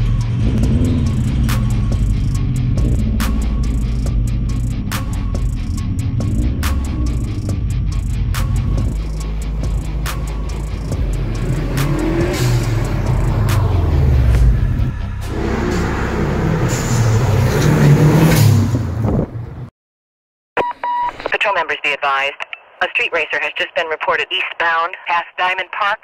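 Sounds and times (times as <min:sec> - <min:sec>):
car engines revving: 0:00.0 - 0:19.7
police radio beep: 0:20.6 - 0:26.0
radio dispatcher voice: 0:21.1 - 0:26.0.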